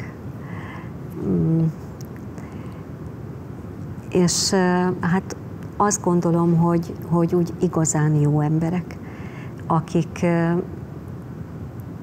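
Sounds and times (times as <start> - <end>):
woman humming hesitation: 1.1 - 1.8.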